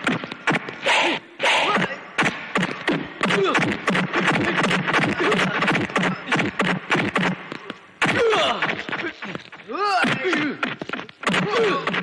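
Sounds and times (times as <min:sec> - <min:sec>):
punch sound effects: 0:00.0 - 0:07.4, 0:08.0 - 0:12.0
grunts and shouts: 0:00.8 - 0:02.0, 0:08.0 - 0:12.0.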